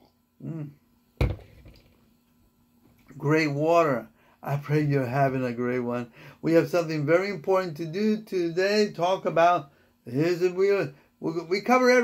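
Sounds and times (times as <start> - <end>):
mug knocking on desk: 1.2 - 1.9.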